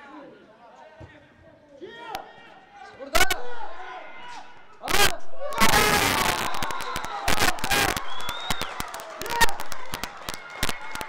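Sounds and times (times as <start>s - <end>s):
players shouting: 3.2s - 11.0s.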